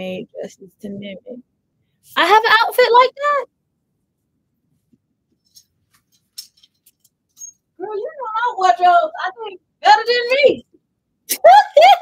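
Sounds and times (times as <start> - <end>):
fabric rustling: 4.1 - 7.4
clothes hangers scraping on rail: 5.4 - 7.6.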